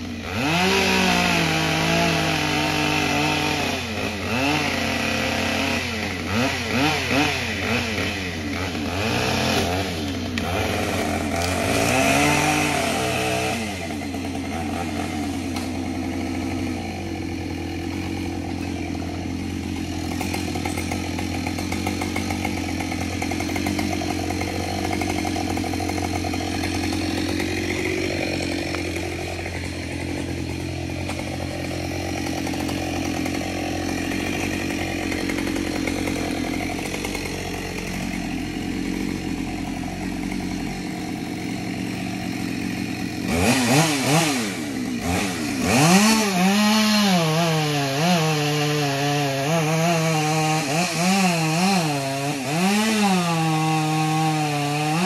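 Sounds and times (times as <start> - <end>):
chainsaw cutting tree: 0.0 - 55.0.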